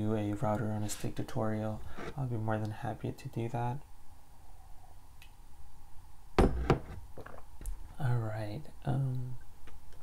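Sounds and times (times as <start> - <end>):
sharp knocks: 6.4 - 7.4.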